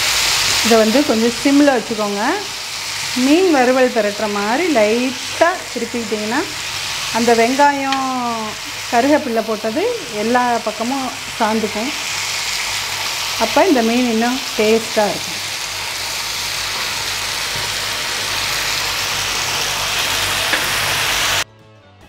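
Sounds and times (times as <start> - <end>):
fish sizzling on a griddle: 0.0 - 21.4.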